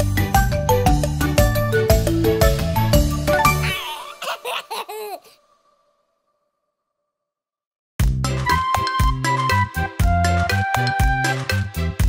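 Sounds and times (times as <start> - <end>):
baby giggling: 3.6 - 5.4.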